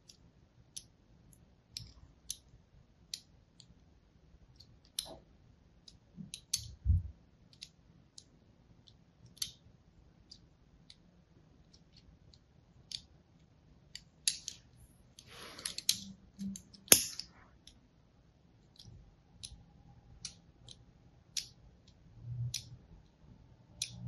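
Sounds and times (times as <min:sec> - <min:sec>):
blade scoring soap clicks: 0:23.8 - 0:24.0.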